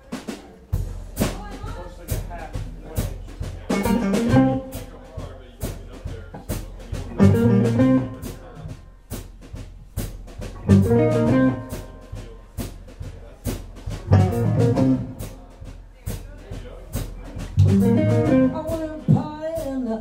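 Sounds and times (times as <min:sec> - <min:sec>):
drum kit beat: 0:00.0 - 0:20.0
full-band chords: 0:00.2 - 0:05.1, 0:06.9 - 0:15.7, 0:17.4 - 0:20.0
bass guitar: 0:03.4 - 0:04.9, 0:06.4 - 0:15.7, 0:17.3 - 0:20.0
overdriven electric guitars: 0:07.1 - 0:08.2, 0:10.6 - 0:12.0, 0:14.1 - 0:15.2, 0:17.6 - 0:18.7.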